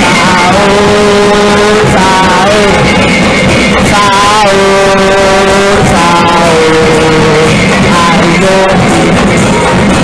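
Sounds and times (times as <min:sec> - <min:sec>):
drum and wood percussion: 0:00.0 - 0:10.0.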